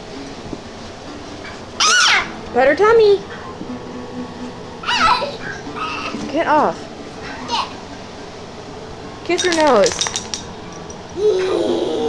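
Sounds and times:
dog whining: 0:01.8 - 0:02.4, 0:04.8 - 0:06.2.

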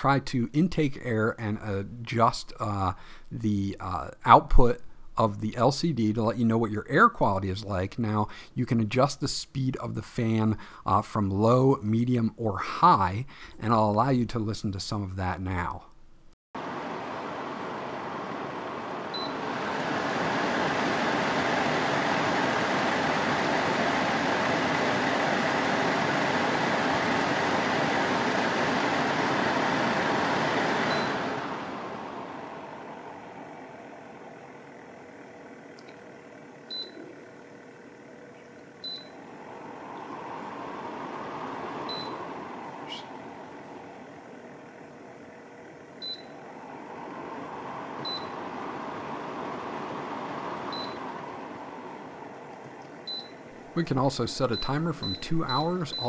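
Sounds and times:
air purifier fan running: 0:00.0 - 0:15.8, 0:16.6 - 0:56.0
touch-control beeps: 0:30.8 - 0:31.3, 0:36.7 - 0:37.2, 0:38.8 - 0:39.2, 0:41.9 - 0:42.2, 0:46.0 - 0:46.4, 0:48.0 - 0:48.3, 0:50.7 - 0:51.0, 0:53.0 - 0:53.4, 0:54.5 - 0:56.0.

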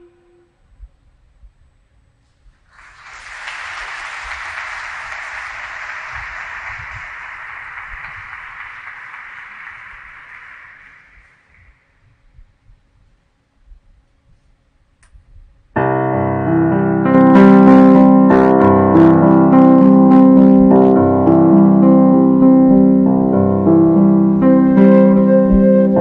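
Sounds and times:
applause: 0:02.7 - 0:11.8.

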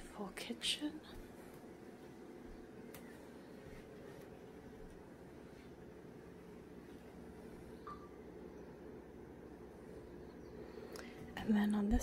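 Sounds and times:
faint low hum: 0:00.0 - 0:12.0
faint chirp: 0:07.6 - 0:11.4.

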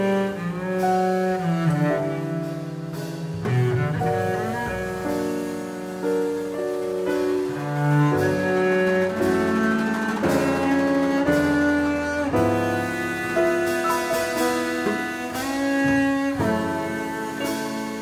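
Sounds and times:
bowed double bass melody: 0:00.0 - 0:18.0.

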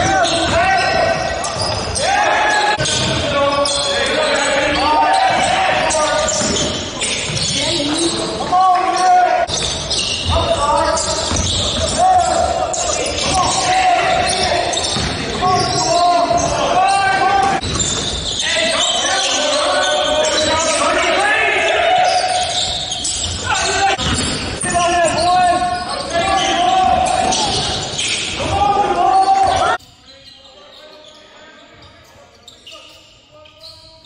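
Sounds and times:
shouting voices: 0:00.0 - 0:17.6, 0:18.3 - 0:29.8
basketball bouncing on court: 0:05.1 - 0:08.2, 0:09.5 - 0:12.3, 0:13.1 - 0:16.5, 0:17.4 - 0:18.3, 0:22.6 - 0:25.8.

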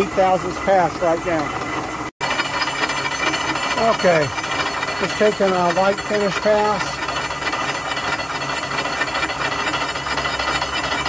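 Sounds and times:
milling machine cutting steel: 0:00.0 - 0:11.0.

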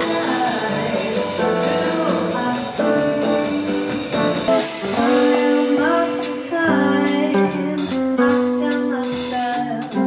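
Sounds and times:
drum kit with cymbal strokes: 0:00.0 - 0:10.0
jazz guitar: 0:00.0 - 0:10.0
upright double bass: 0:00.0 - 0:10.0.

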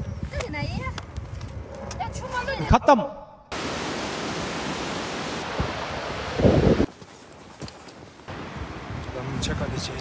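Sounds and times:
wind rumble on microphone: 0:00.0 - 0:02.5, 0:05.5 - 0:06.9, 0:08.3 - 0:10.0
footsteps on dirt path: 0:06.9 - 0:08.8.

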